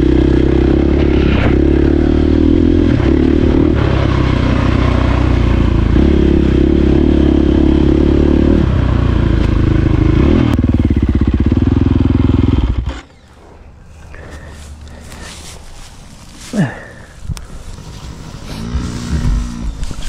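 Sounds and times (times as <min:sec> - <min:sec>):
dirt bike engine revving: 0:00.0 - 0:13.2, 0:17.8 - 0:20.0.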